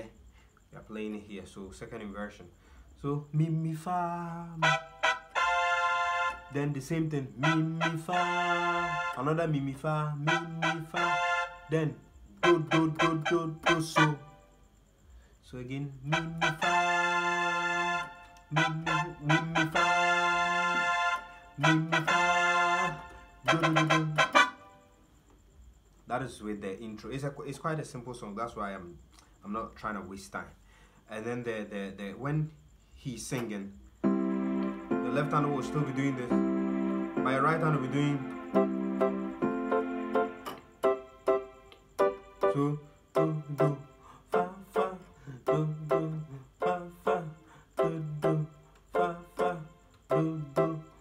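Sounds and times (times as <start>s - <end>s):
piano bass-note pattern: 4.5s - 14.3s, 16.1s - 24.8s, 34.0s - 50.9s
keyboard playing a short riff: 4.5s - 14.4s, 16.0s - 24.8s, 34.0s - 43.8s
piano chords: 16.1s - 24.8s, 34.0s - 51.0s.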